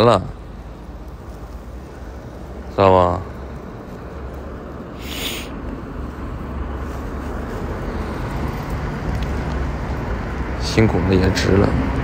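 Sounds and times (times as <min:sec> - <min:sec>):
vehicle engines rumbling: 0:00.0 - 0:12.0
short hiss: 0:05.0 - 0:05.6.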